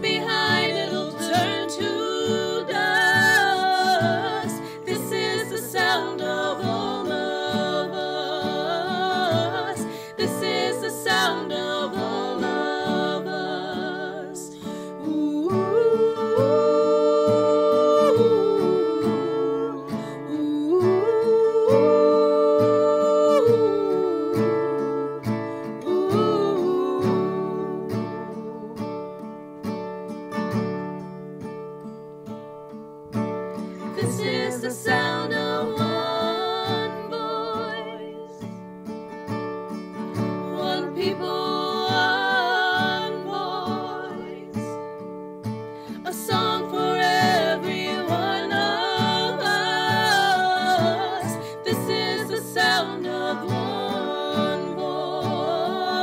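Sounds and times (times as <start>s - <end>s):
voices singing in harmony: 0.0s - 29.0s, 33.7s - 38.6s, 40.0s - 44.9s, 45.8s - 56.0s
acoustic guitar strumming: 0.0s - 56.0s.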